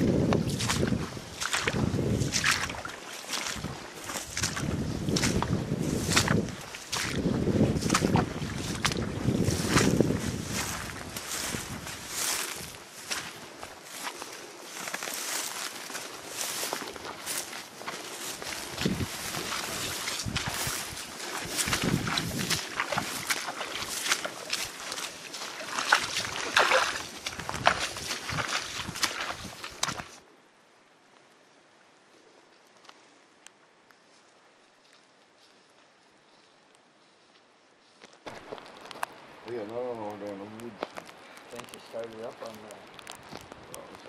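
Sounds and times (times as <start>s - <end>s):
wind buffeting microphone: 0.0s - 13.2s, 18.2s - 24.0s, 26.0s - 30.1s
dry grass swishing: 0.0s - 30.2s.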